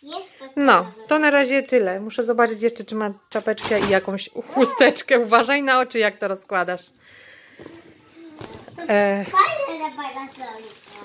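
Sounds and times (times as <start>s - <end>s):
person's voice: 4.4s - 5.1s
plastic umbrella rustling: 8.0s - 11.0s.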